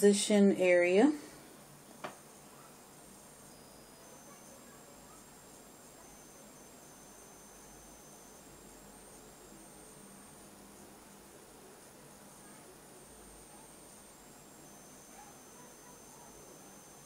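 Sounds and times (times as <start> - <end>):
faint high whines: 0.0 - 17.0.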